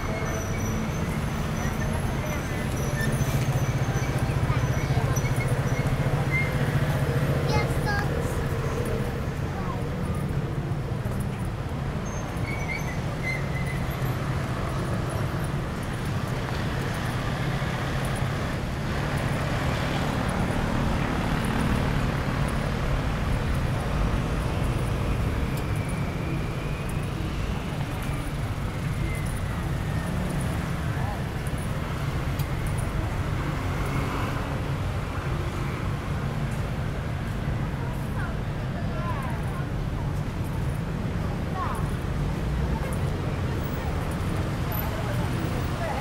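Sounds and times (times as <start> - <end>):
rumble of traffic: 0.0 - 46.0
voices of passersby: 0.0 - 46.0.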